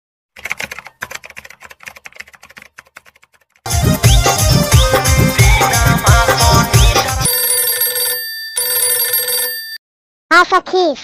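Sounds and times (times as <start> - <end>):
music with strong beat: 3.7 - 7.2
electronic phone ringtone: 7.0 - 9.8.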